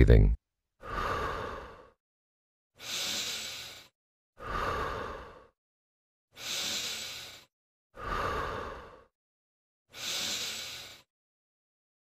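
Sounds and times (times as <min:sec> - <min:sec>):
person inhaling: 0:02.8 - 0:05.5, 0:06.4 - 0:09.1, 0:09.9 - 0:11.1.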